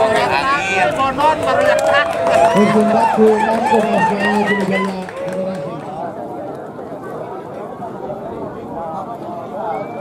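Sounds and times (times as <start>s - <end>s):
men calling and shouting: 0.0s - 6.2s.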